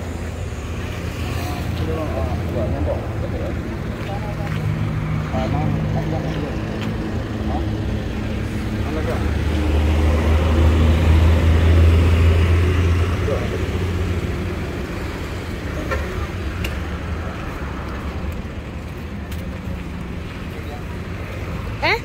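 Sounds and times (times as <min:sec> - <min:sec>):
heavy vehicle engine rumble: 0:00.0 - 0:22.0
steady roadway noise: 0:00.0 - 0:22.0.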